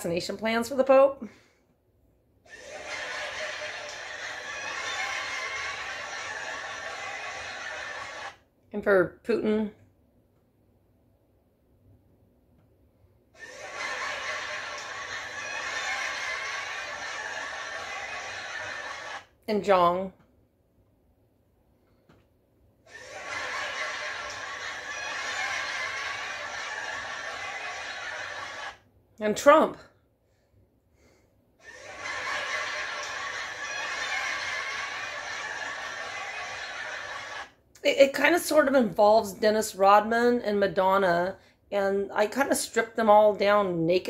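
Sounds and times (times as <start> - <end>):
canned audience laughter: 2.5 - 8.4, 13.4 - 19.3, 22.9 - 28.8, 31.6 - 37.6.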